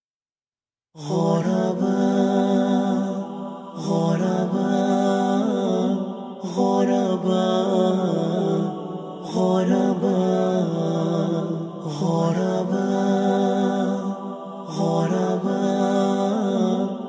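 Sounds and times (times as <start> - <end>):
layered vocal humming: 1.0 - 17.0.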